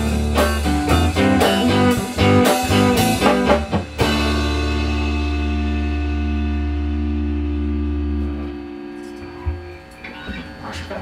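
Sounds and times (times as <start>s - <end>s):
electric guitar and bass chord: 0.0s - 10.6s.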